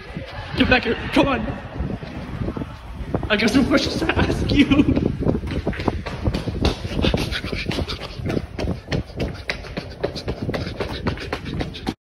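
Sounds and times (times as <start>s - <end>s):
microphone buffeting rumble: 0.0s - 12.0s
quick footfalls: 4.3s - 12.0s
person panting: 5.8s - 12.0s.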